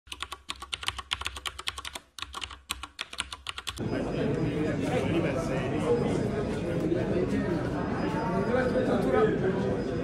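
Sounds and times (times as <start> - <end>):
keyboard typing clicks: 0.1 - 3.8.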